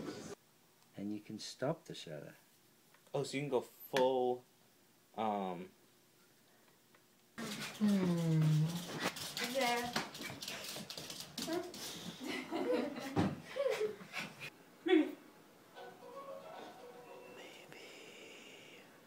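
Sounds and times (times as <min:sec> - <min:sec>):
thin high tone: 0:15.8 - 0:18.2.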